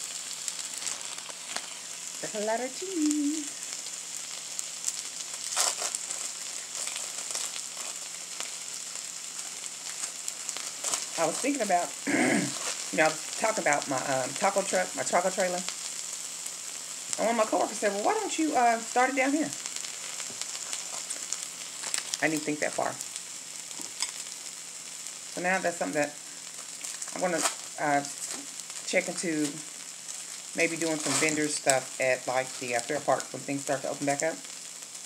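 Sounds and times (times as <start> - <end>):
food sizzling on a griddle: 0.0 - 35.0
crackly rustle: 4.4 - 11.7, 12.5 - 13.0, 19.6 - 22.3, 26.4 - 33.0.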